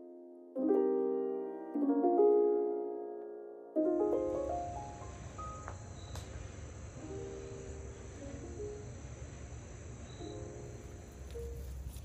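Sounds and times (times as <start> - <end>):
faint soft music notes: 0.0 - 12.0
crickets chirring: 4.0 - 12.0.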